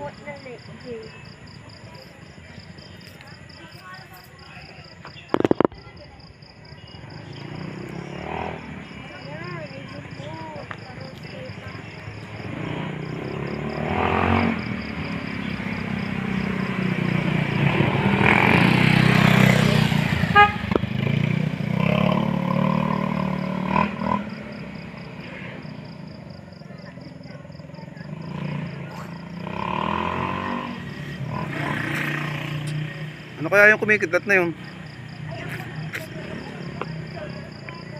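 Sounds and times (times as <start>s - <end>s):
insects chirping: 0.0s - 37.9s
vehicles passing: 0.0s - 37.9s.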